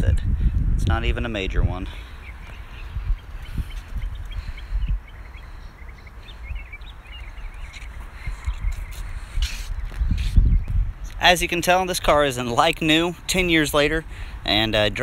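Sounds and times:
wind rumble on microphone: 0.0s - 15.0s
faint bird chirps: 2.0s - 10.7s.

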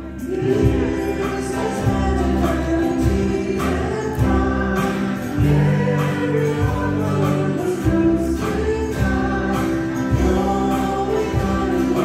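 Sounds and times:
group singing a hymn: 0.0s - 12.0s
live band playing: 0.0s - 12.0s.

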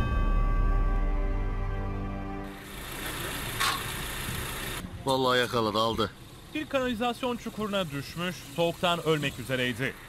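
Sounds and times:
vehicle engine idling: 2.5s - 10.0s.

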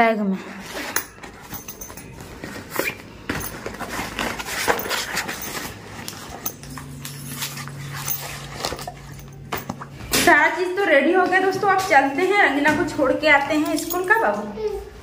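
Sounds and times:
plastic box rustling in backpack: 0.6s - 6.6s.

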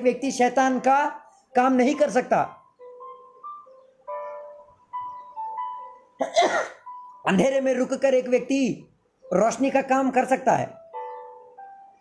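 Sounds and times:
soft music of held notes: 0.0s - 12.0s
person coughing: 6.2s - 6.8s.

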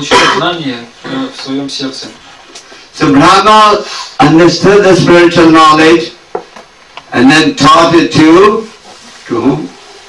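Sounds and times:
throat clearing: 0.0s - 1.4s.

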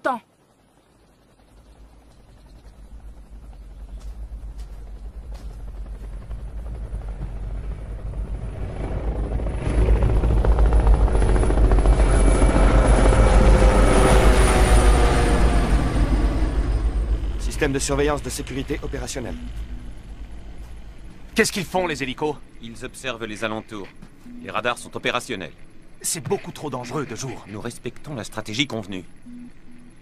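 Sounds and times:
helicopter rotor beat: 0.0s - 30.0s.

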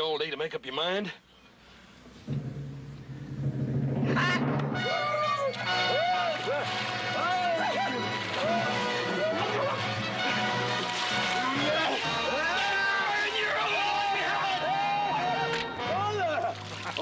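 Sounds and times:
low drum swell: 2.1s - 6.4s
dramatic orchestral music: 2.3s - 16.7s
water splashing: 4.7s - 14.6s, 15.4s - 17.0s.

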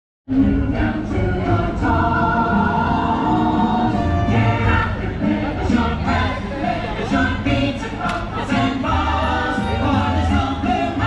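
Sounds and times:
choir singing held chords: 0.3s - 11.0s
orchestral music: 0.4s - 7.7s.

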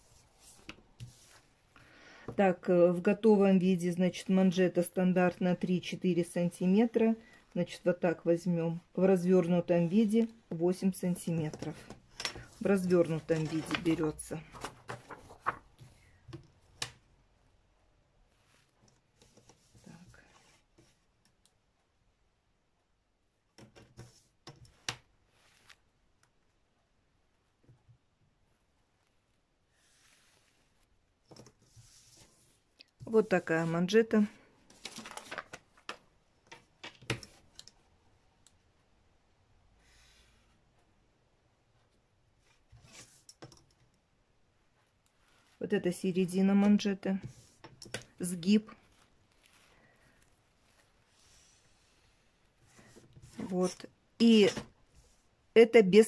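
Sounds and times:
paper rustling: 11.6s - 16.1s, 34.6s - 36.0s, 46.7s - 53.8s.

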